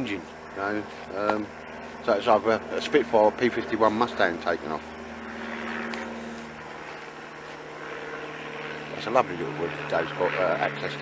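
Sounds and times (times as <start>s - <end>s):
distant propeller aircraft drone: 0.0s - 11.0s.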